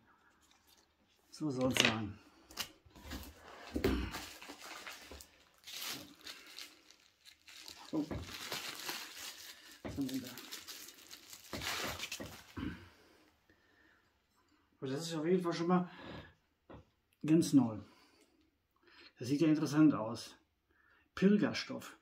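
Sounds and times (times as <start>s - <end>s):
bubble wrap crinkling and tearing: 2.4s - 12.8s.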